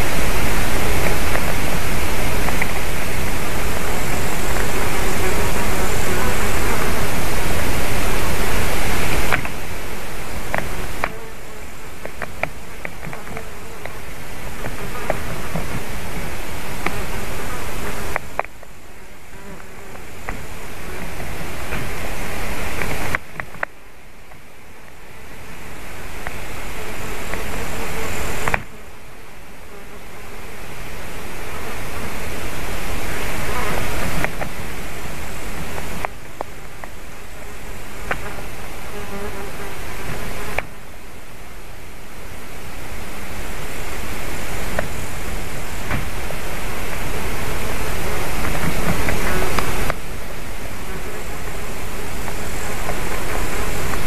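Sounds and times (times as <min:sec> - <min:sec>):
flies buzzing: 0:00.0 - 0:54.0
steady background hiss: 0:00.0 - 0:54.0
steady rushing outdoor noise: 0:00.0 - 0:54.0.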